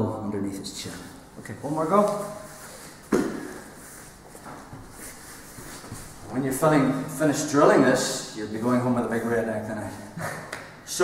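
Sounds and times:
shuffling on foam mats: 0.9s - 6.4s.

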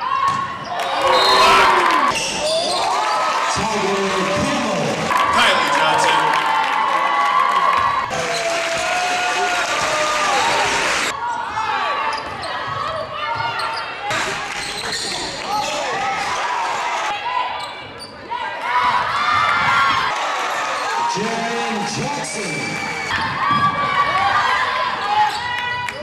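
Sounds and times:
crowd noise in echoing hall: 0.0s - 26.0s
sneaker squeaks on court: 14.6s - 15.7s.

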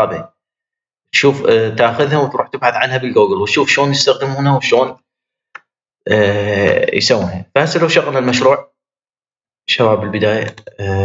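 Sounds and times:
man speaking: 0.0s - 0.3s, 1.2s - 5.0s, 6.1s - 8.6s, 9.7s - 11.0s
man saying aah: 10.4s - 11.0s.

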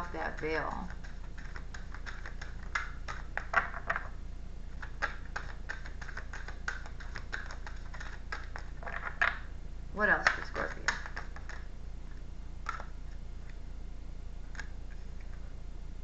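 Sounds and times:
steady low hum: 0.0s - 16.0s
cards being shuffled: 0.8s - 4.1s, 4.8s - 9.4s, 10.2s - 11.7s.

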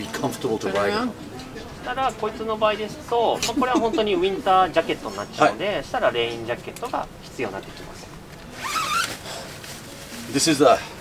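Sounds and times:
jacket zipper zipping: 8.5s - 9.3s.

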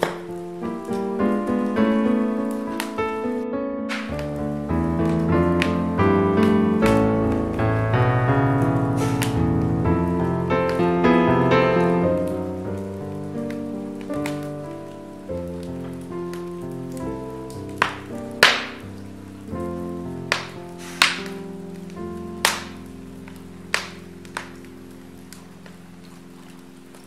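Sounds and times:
sharp pops of fire: 0.0s - 3.2s, 3.9s - 27.0s
soft piano music: 0.0s - 27.0s
wood fire crackling: 0.0s - 27.0s.

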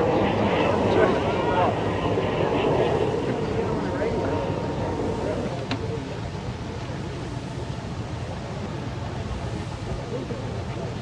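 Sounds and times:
low rumble of street noise: 0.0s - 11.0s.

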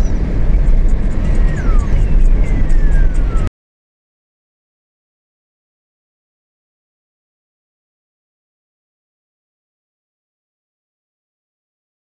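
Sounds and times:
road and wind noise inside car: 0.0s - 3.5s
faint high tone falling in pitch: 1.3s - 3.5s.

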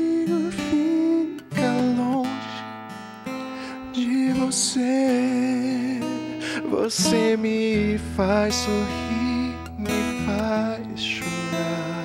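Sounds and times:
man singing: 0.0s - 2.8s, 3.6s - 12.0s
strummed acoustic guitar: 0.0s - 12.0s.

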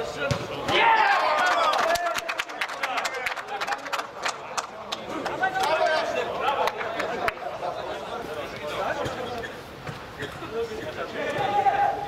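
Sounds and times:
footballers shouting: 0.5s - 9.4s, 10.7s - 12.0s.

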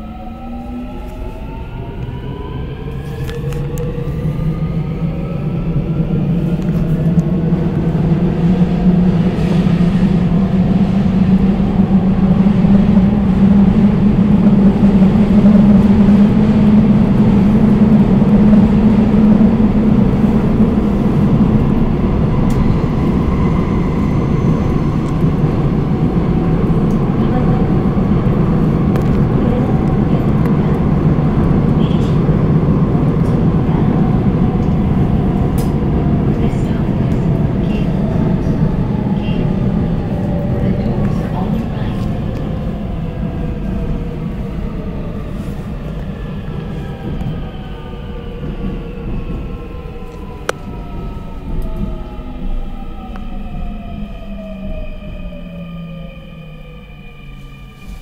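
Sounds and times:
rising train whine: 0.0s - 58.0s
subway train running: 0.0s - 58.0s.

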